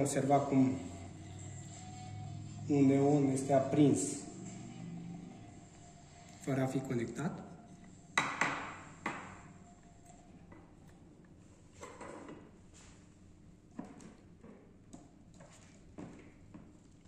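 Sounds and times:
knocks on wooden table: 8.2 - 9.3.

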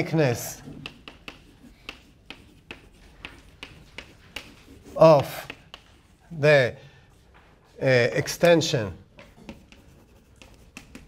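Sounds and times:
chalk tapping and scratching on blackboard: 0.0 - 6.4, 7.1 - 11.0.

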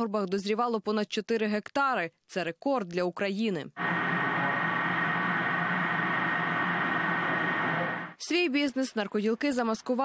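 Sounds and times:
machine high whine: 3.8 - 8.2
machine low hum: 3.8 - 8.2.

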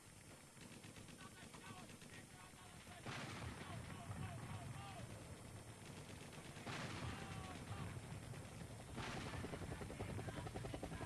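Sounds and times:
helicopter rotor chopping: 0.0 - 11.0.

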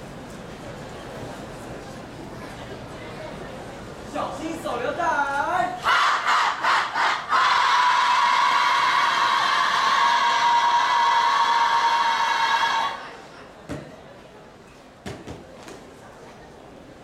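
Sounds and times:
group of people yelling: 5.8 - 13.1.

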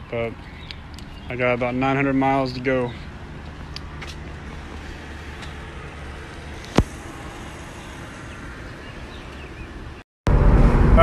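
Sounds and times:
fuel pump humming: 0.1 - 10.0.

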